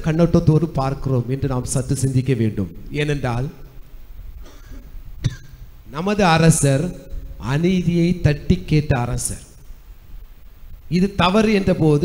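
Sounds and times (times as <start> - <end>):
man speaking: 0.0 - 3.6, 5.9 - 9.6, 10.9 - 12.0
man coughing: 4.4 - 5.6.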